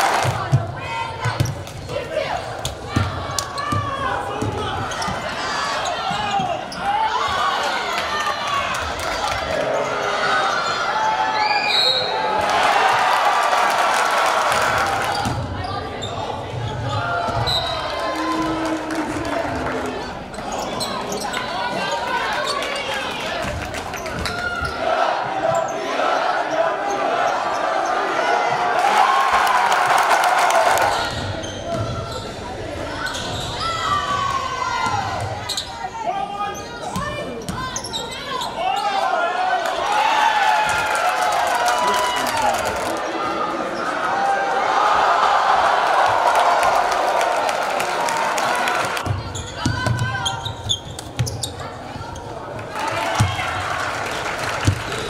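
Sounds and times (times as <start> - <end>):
voices of players and crowd: 0.0 - 55.0
sneaker squeaks: 3.0 - 7.0, 15.1 - 17.9, 20.3 - 22.8, 30.9 - 34.0, 35.4 - 35.9, 36.5 - 39.0, 49.0 - 52.4.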